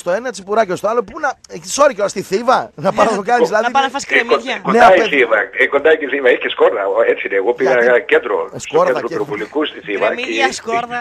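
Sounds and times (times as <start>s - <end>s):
radio conversation: 2.8s - 11.0s.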